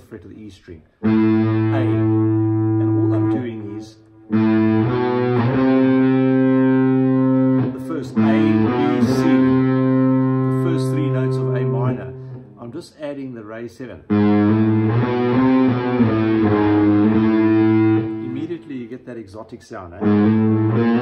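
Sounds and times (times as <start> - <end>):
overdriven electric guitar notes: 1.0 - 12.6, 14.1 - 18.7, 20.0 - 21.0.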